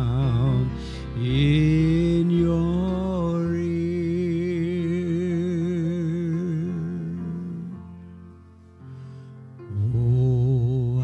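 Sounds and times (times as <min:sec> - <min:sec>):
slow worship music: 0:00.0 - 0:11.0.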